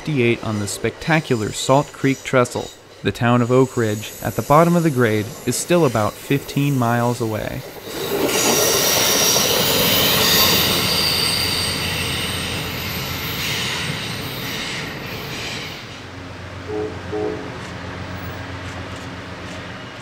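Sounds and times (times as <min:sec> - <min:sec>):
rumble of wheels on track: 0:00.0 - 0:20.0
train wheels squealing: 0:00.1 - 0:16.0.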